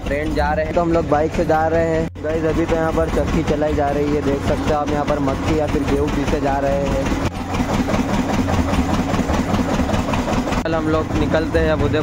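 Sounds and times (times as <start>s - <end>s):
diesel engine running rapid beat: 0.0s - 12.0s.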